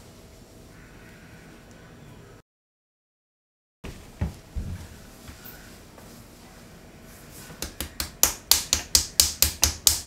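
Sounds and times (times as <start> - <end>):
hand slapping face: 7.6 - 10.0.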